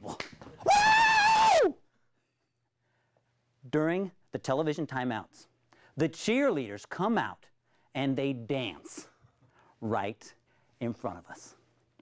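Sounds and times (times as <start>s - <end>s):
man cheering woo: 0.6s - 1.8s.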